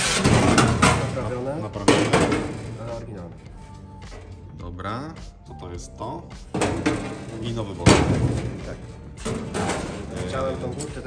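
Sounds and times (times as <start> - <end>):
background music: 0.0 - 11.0
men talking: 0.7 - 3.5, 4.5 - 11.0.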